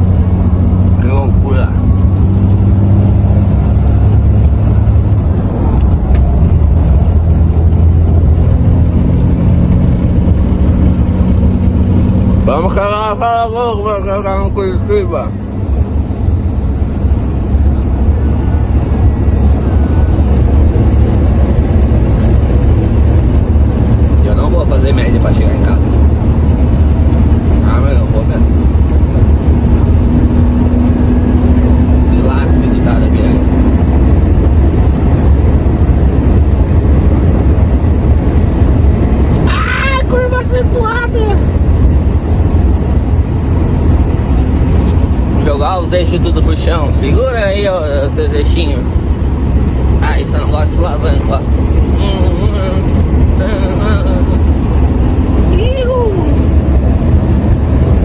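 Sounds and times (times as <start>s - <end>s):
diesel engine and road noise: 0.0s - 58.0s.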